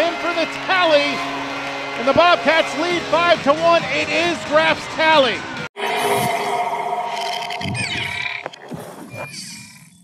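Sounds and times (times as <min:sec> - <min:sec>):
sharp electronic hit: 0:05.8 - 0:08.6
synthesized tones with falling sweeps: 0:05.8 - 0:08.7.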